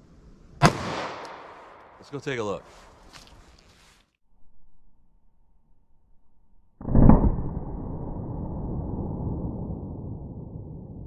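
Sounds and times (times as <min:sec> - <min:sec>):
gunshot echo: 0:00.6 - 0:02.0, 0:06.8 - 0:07.9
pistol shot: 0:00.6 - 0:02.0.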